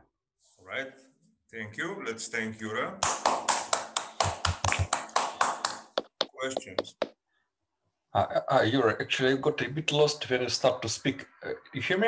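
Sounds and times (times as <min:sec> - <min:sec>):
person clapping hands: 0:03.0 - 0:07.1.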